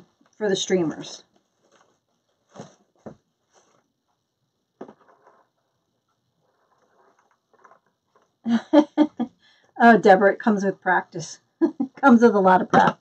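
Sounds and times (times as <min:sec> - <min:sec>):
woman speaking: 0:00.4 - 0:01.3, 0:09.8 - 0:13.0
faint handling noises: 0:01.3 - 0:04.2.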